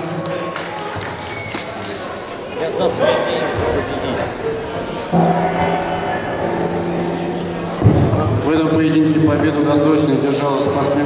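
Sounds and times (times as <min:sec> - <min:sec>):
voices and bustle in hall: 0:00.0 - 0:11.0
steady held tone: 0:05.0 - 0:09.7.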